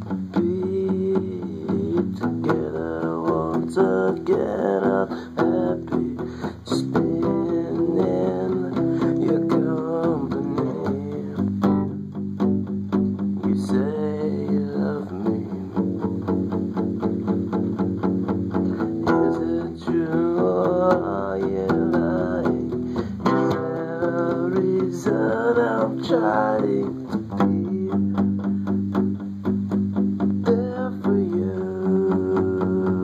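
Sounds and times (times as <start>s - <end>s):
acoustic guitar strumming: 0.0s - 33.0s.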